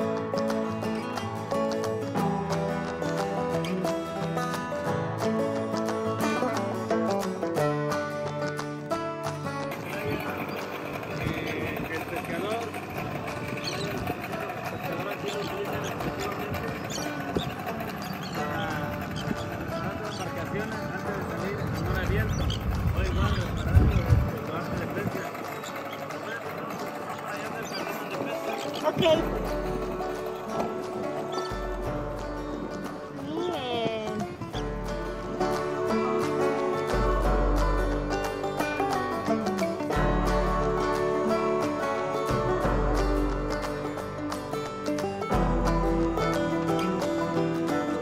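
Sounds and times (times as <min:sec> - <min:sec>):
background music: 0:00.0 - 0:48.0
indistinct voices: 0:09.7 - 0:44.1
wind on microphone: 0:12.9 - 0:25.9.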